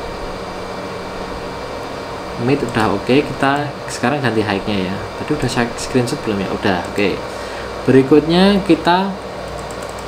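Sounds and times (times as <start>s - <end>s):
pink noise hiss: 0.0s - 9.9s.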